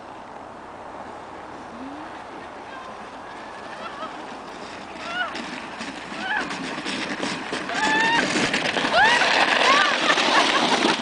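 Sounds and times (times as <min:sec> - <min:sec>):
plastic sled sliding on snow: 0:02.1 - 0:11.0.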